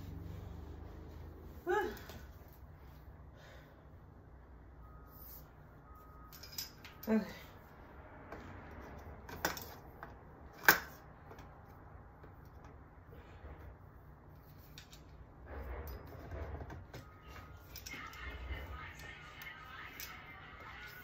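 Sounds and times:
rustling and bumping of parts: 0:08.2 - 0:18.5.

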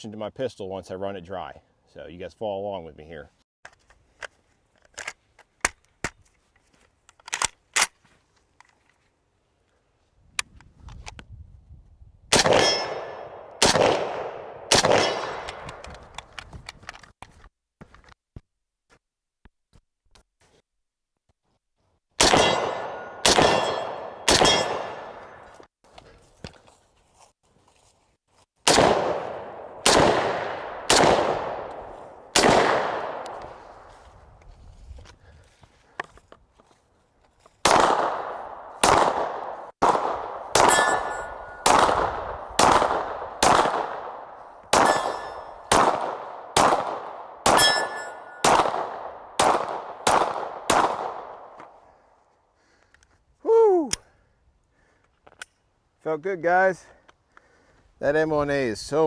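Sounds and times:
pistol shots: 0:12.3 - 0:15.8, 0:22.2 - 0:25.4, 0:28.7 - 0:33.4, 0:37.6 - 0:51.6
rifle shots ringing out: 0:12.3 - 0:15.8, 0:22.2 - 0:25.5, 0:28.7 - 0:33.6, 0:37.6 - 0:51.6.

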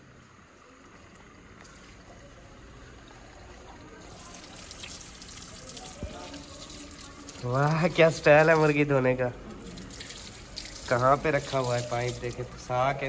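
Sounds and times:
tap water splashing over hands: 0:04.1 - 0:08.8, 0:09.6 - 0:12.7.

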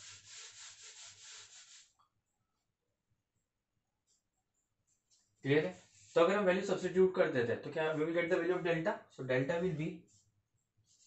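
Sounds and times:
scratchy wiping of whiteboard: 0:00.0 - 0:02.0, 0:05.1 - 0:06.8, 0:10.0 - 0:11.0.

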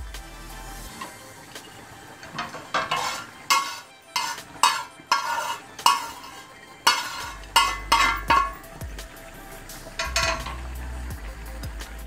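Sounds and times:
oil sizzling: 0:00.0 - 0:12.0
spatula scraping frying pan: 0:00.9 - 0:10.8.

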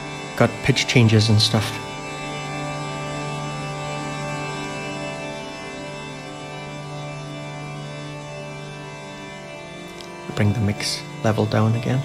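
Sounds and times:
sustained reverb drone: 0:00.0 - 0:12.0.

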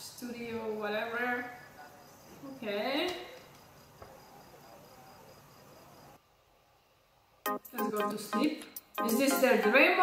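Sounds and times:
cricket chirping: 0:01.4 - 0:02.7, 0:03.3 - 0:06.2.

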